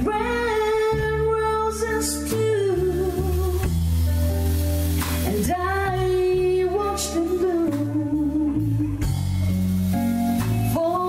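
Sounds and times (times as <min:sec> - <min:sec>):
bass and guitar accompaniment: 0:00.0 - 0:11.0.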